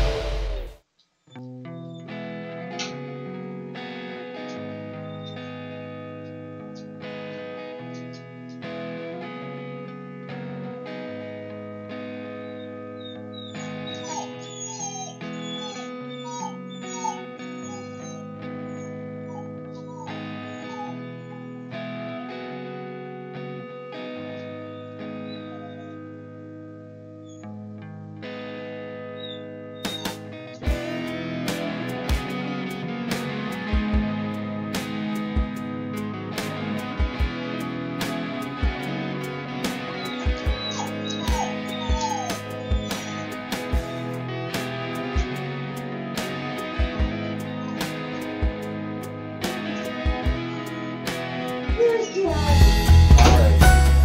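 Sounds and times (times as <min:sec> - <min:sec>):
guitar background music: 0:00.0 - 0:54.0
dog whining: 0:12.4 - 0:21.8, 0:24.4 - 0:26.0, 0:29.2 - 0:30.2, 0:40.0 - 0:43.4, 0:49.8 - 0:52.5.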